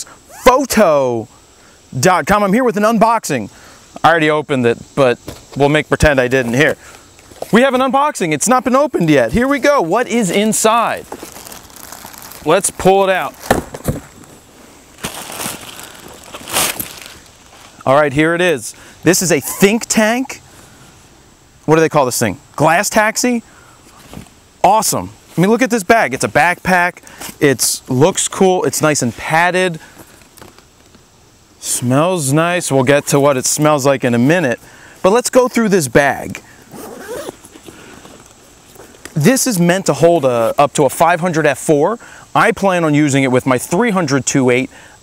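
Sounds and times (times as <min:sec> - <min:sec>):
plastic bag crinkling: 0:10.7 - 0:14.4, 0:15.0 - 0:17.8.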